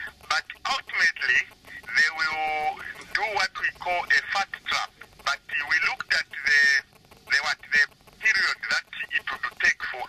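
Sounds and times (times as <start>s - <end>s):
man speaking in broken phrases: 0.0s - 10.0s.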